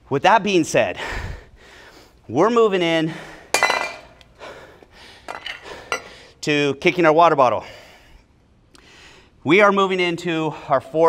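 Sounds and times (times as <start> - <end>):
water bottle clattering on tiles: 3.6 - 4.1.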